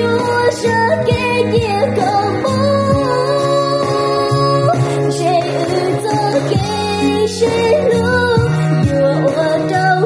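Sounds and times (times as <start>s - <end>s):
backing music with held chords: 0.0s - 10.0s
person singing pop melody: 0.0s - 10.0s.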